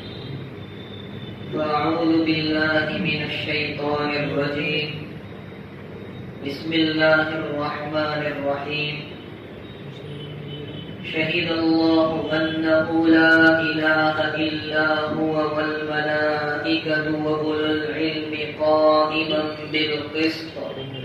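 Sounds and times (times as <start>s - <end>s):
man chanting: 1.5s - 5.1s, 6.4s - 9.2s, 10.5s - 21.0s.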